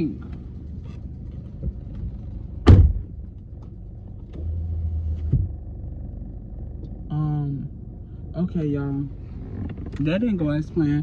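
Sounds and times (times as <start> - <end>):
low rumble: 0.0 - 11.0
car door slamming: 2.5 - 3.3.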